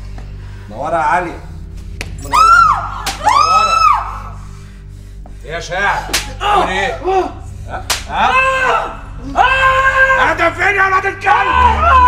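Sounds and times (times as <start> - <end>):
low steady drone: 0.0 - 12.0
sharp cracking blows: 6.1 - 6.4, 7.8 - 8.2
person screaming: 6.3 - 7.4, 8.2 - 10.4, 11.2 - 12.0.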